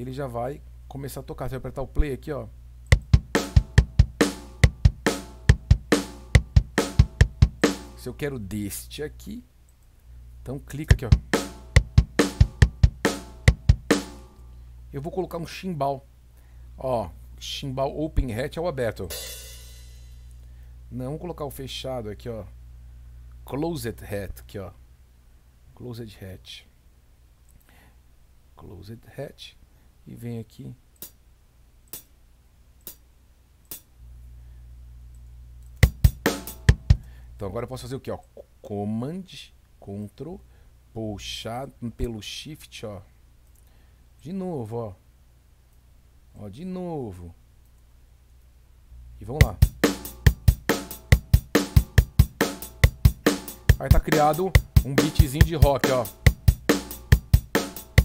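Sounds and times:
faint low hum: 0:00.0 - 0:57.6
closed hi-hat hits: 0:02.8 - 0:08.4, 0:10.7 - 0:14.5, 0:18.9 - 0:20.6, 0:31.0 - 0:31.2, 0:31.9 - 0:32.2, 0:32.8 - 0:33.1, 0:33.7 - 0:34.0, 0:35.8 - 0:37.2, 0:49.3 - 0:58.0
drum machine rock beat: 0:02.9 - 0:08.0, 0:10.9 - 0:14.4, 0:19.1 - 0:20.2, 0:35.8 - 0:37.1, 0:49.4 - 0:58.0.

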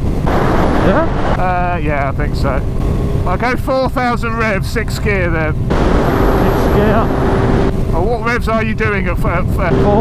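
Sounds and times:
wind rush on microphone: 0:00.0 - 0:10.0
motorcycle engine cruising: 0:04.5 - 0:08.6.

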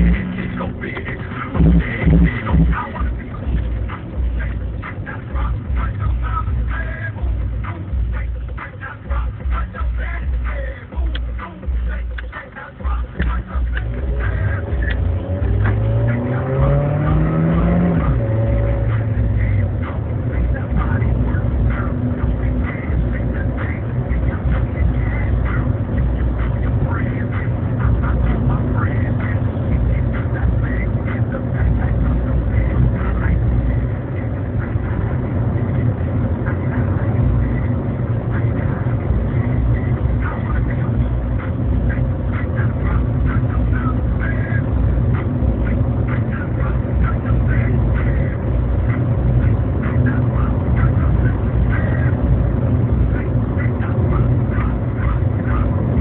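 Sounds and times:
car engine heard from cabin: 0:00.0 - 0:56.0
road noise: 0:00.0 - 0:56.0.

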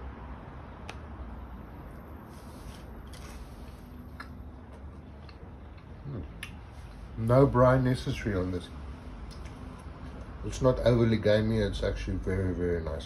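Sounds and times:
low background hum: 0:00.0 - 0:13.0
mouth clicks from chewing: 0:04.1 - 0:04.4.

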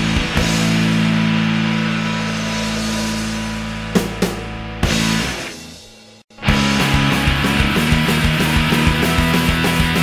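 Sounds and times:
rock band held chord ringing: 0:00.0 - 0:10.0.

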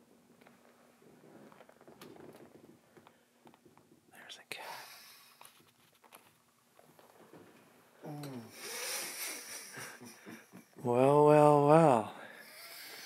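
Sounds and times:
faint whispering: 0:04.1 - 0:05.1.

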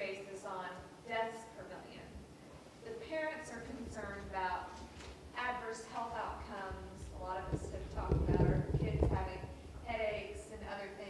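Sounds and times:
low knocks and rumbles: 0:06.8 - 0:09.6.

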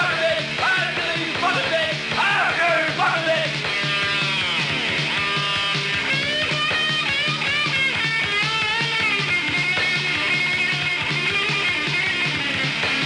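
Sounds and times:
pulsing bass beat: 0:00.0 - 0:13.0
rock lead guitar: 0:00.0 - 0:13.0.

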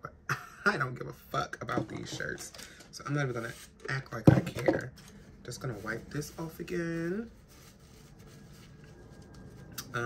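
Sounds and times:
tissue rubbing on fabric: 0:05.5 - 0:09.8.

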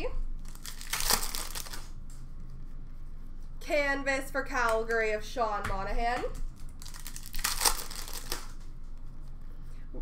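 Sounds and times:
trading cards rustling: 0:06.8 - 0:08.6.

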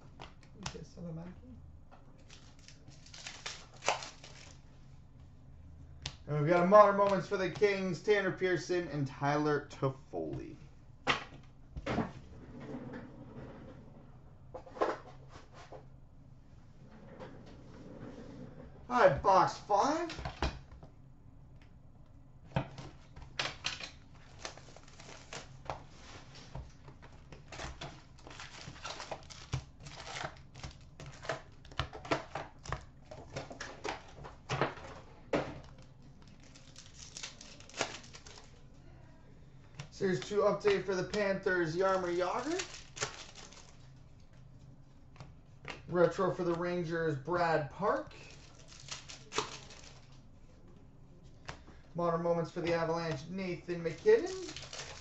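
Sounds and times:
cards rustling: 0:02.2 - 0:04.6, 0:22.7 - 0:38.7, 0:39.7 - 0:44.5, 0:45.1 - 0:50.2, 0:52.4 - 0:55.0
foil wrappers crinkling: 0:02.2 - 0:04.7, 0:23.6 - 0:34.5, 0:35.6 - 0:38.7, 0:40.0 - 0:44.2, 0:47.8 - 0:50.3, 0:52.6 - 0:55.0.

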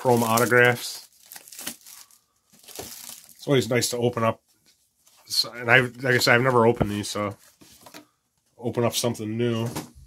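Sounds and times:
plastic shrink wrap crinkling: 0:00.0 - 0:03.7.

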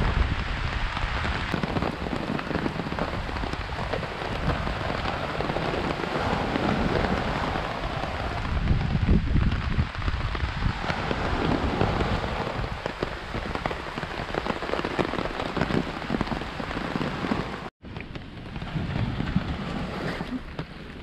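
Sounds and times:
rain drumming on fabric umbrella: 0:00.0 - 0:21.0.

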